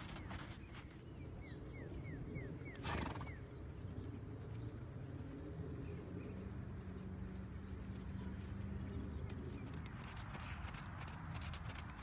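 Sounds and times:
hooves trotting in sand: 0.0 - 12.0.

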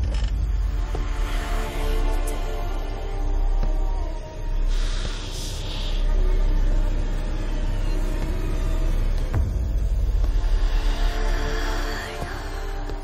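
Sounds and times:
low rumbling drone: 0.0 - 13.0
pulsing deep rumble: 0.0 - 13.0.

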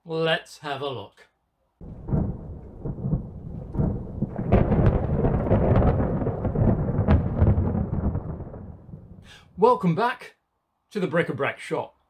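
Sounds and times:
thunder rumbling with crackles: 1.8 - 9.4.

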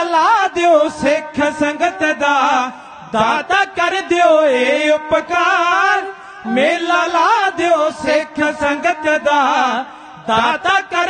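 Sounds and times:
chanted singing: 1.8 - 11.0.

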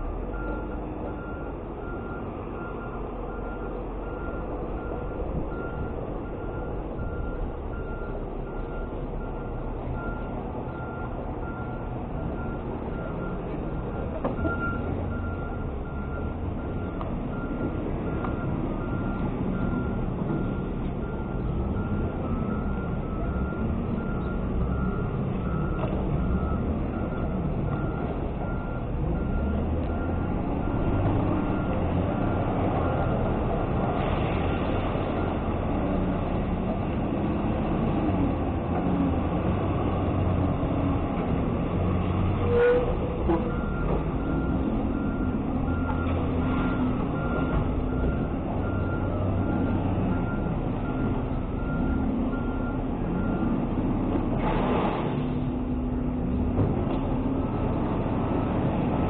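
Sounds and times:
garbage truck engine: 0.0 - 59.0
recycling being dumped: 0.0 - 59.0.

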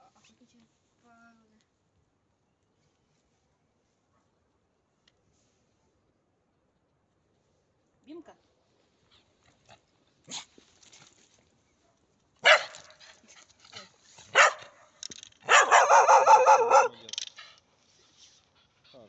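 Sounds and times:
dog barking: 12.4 - 12.8, 14.3 - 14.8, 15.4 - 17.0.

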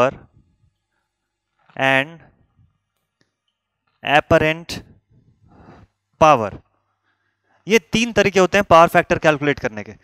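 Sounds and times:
man speaking: 0.0 - 0.3, 1.7 - 2.4, 4.0 - 5.0, 6.2 - 6.7, 7.6 - 10.0.

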